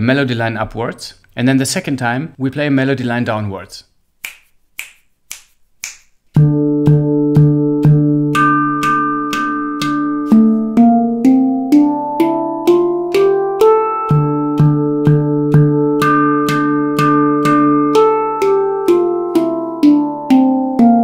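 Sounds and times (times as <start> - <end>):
finger snaps: 4.2 - 6.4
handpan playing: 6.4 - 21.0.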